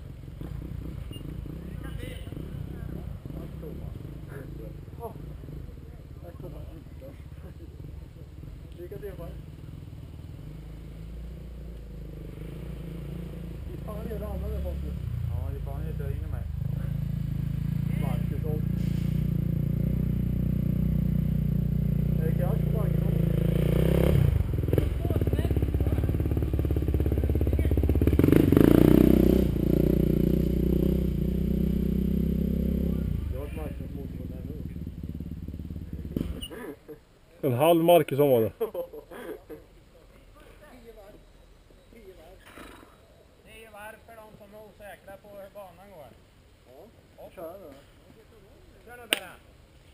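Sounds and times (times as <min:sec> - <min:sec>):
motocross bike engines running: 0:00.0 - 0:36.5.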